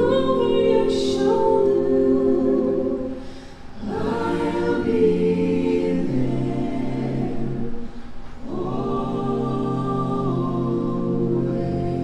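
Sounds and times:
a cappella choir singing chords: 0.0 - 12.0.

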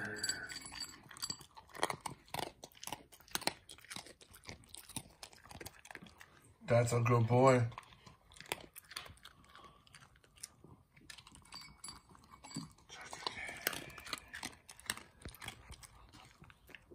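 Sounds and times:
dog crunching dry kibble: 0.0 - 16.9.

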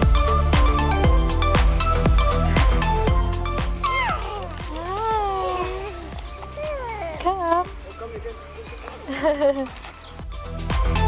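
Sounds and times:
background music with beat: 0.0 - 11.0
toddler babbling and squealing: 3.8 - 7.2.

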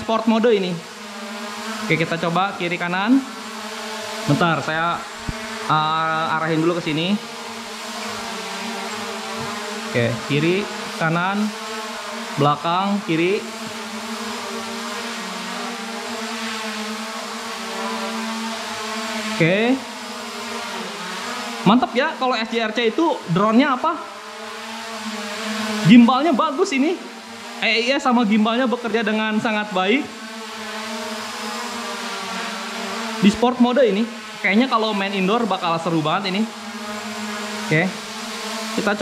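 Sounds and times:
drone propellers buzzing: 0.0 - 39.0.

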